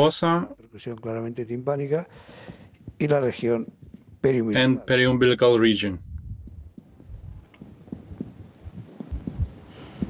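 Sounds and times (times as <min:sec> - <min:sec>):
fingers tapping on belly: 0:06.1 - 0:09.6.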